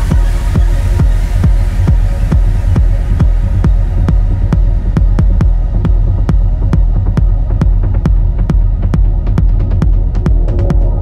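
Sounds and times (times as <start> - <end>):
deep bass drone: 0.0 - 11.0
techno kick drum: 0.0 - 11.0.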